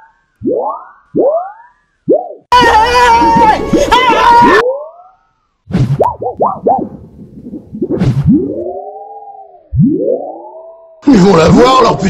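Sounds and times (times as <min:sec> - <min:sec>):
synthesizer swoops: 0:05.7 - 0:11.0.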